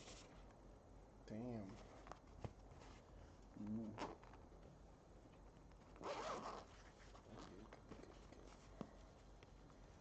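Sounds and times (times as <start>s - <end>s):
zipper pulled open: 3.8s - 4.3s, 5.9s - 7.6s.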